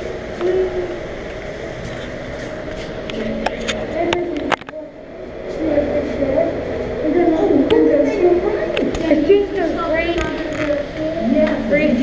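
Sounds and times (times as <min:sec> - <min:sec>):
background chatter of people: 0:00.0 - 0:12.0
steady hum: 0:00.0 - 0:12.0.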